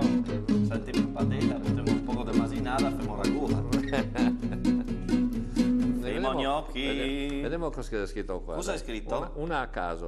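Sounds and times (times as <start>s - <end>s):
acoustic guitar strumming: 0.0s - 7.3s.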